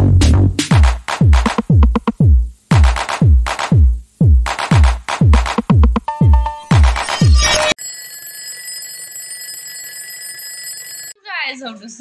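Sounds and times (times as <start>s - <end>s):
alarm clock ringing: 6.2s - 11.2s.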